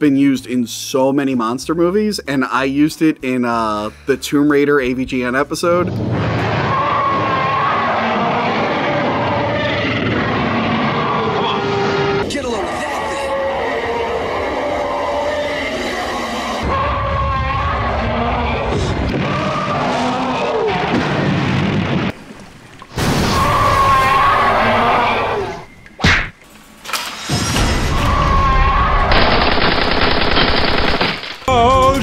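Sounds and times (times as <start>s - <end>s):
monster roar: 6.4s - 21.3s.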